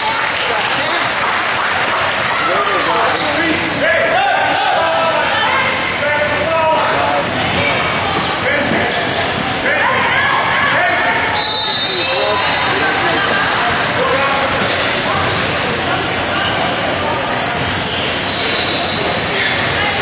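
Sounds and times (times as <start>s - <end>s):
people shouting in a hall: 0.0s - 8.4s, 9.6s - 20.0s
referee's whistle: 11.3s - 12.8s.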